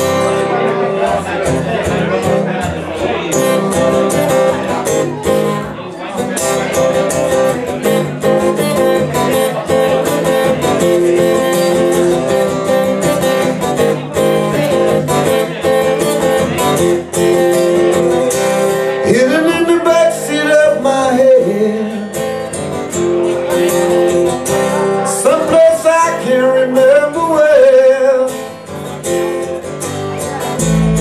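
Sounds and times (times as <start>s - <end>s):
live rock band playing: 0.0s - 31.0s
person singing: 18.7s - 22.6s, 23.5s - 28.6s.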